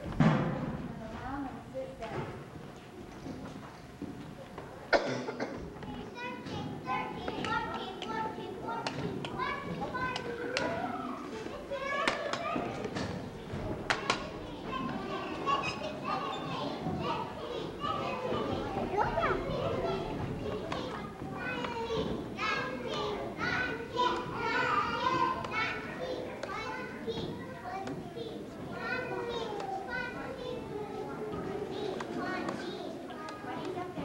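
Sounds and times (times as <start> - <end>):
young children chattering: 0.0 - 34.0.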